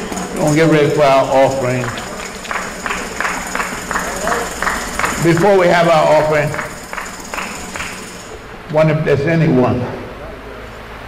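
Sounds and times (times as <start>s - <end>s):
rhythmic hand clapping: 0.0s - 8.4s.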